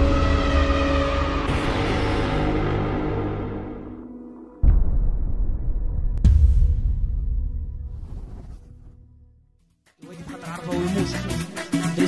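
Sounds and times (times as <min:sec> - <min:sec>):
low rumble: 0:04.6 - 0:09.4.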